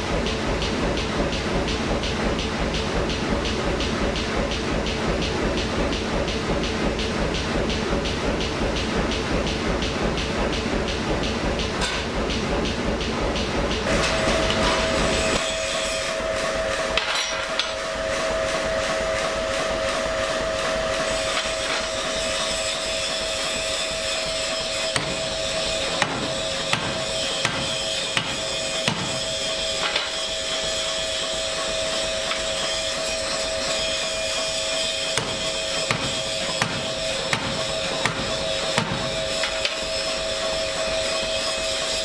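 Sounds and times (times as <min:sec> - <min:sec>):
machine whine: 0:00.0 - 0:42.0
power hammer strokes: 0:20.9 - 0:42.0.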